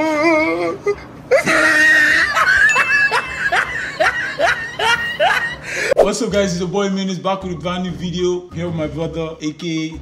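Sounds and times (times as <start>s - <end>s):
man laughing in high bursts: 1.3s - 6.0s.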